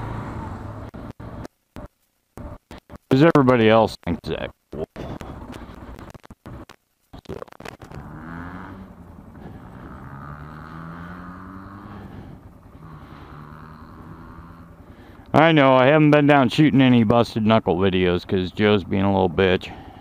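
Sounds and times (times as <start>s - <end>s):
road and wind noise: 0.0s - 3.1s, 5.1s - 20.0s
motorcycle engine running: 5.0s - 20.0s.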